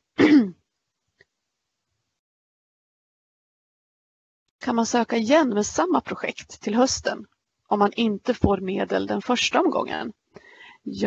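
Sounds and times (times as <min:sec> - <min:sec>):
woman clearing her throat: 0:00.2 - 0:00.6.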